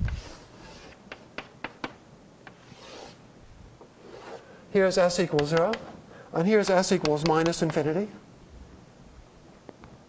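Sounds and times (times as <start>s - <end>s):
chalk scraping on blackboard: 0.0s - 1.0s, 2.5s - 3.2s, 4.0s - 4.5s
chalk tapping on blackboard: 5.3s - 5.9s, 6.7s - 7.8s.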